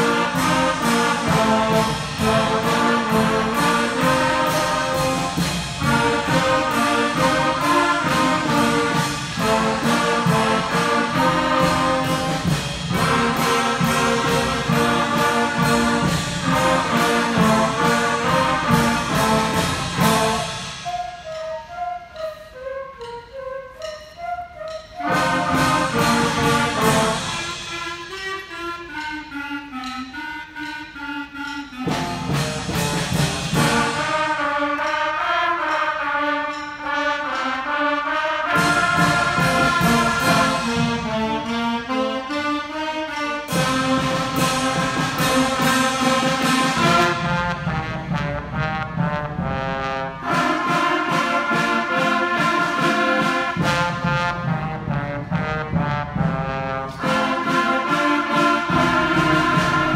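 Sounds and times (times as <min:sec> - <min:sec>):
concert band playing: 0:00.0 - 0:59.9
flutes playing: 0:00.0 - 0:59.9
trumpets and saxophones: 0:00.0 - 0:59.9.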